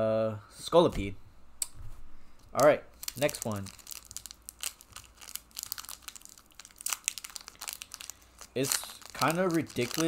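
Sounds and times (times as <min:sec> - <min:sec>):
foil wrapper crinkling and tearing: 0:02.6 - 0:10.0.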